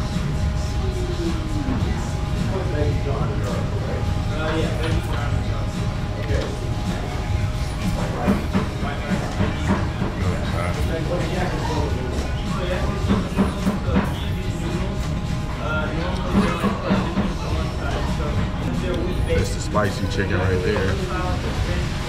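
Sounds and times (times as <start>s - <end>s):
background music: 0.0s - 22.0s
indistinct background voices: 0.0s - 22.0s.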